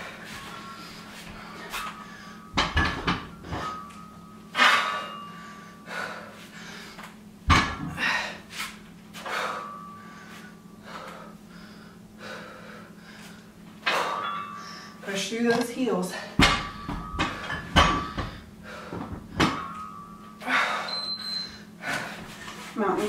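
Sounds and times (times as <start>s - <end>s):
barbell plates knocking on floor: 2.6s - 3.8s, 7.5s - 8.0s, 16.4s - 19.8s
woman exhaling forcefully: 7.8s - 8.4s.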